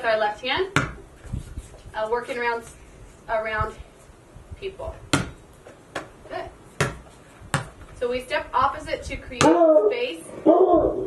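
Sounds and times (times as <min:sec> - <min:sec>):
basketball bouncing on concrete: 0:00.6 - 0:01.0, 0:05.1 - 0:06.2, 0:06.8 - 0:07.9, 0:09.3 - 0:09.6.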